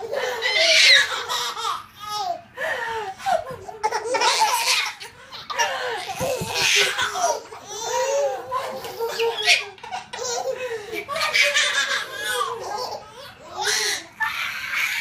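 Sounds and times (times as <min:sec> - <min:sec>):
babies laughing: 0:00.0 - 0:15.0.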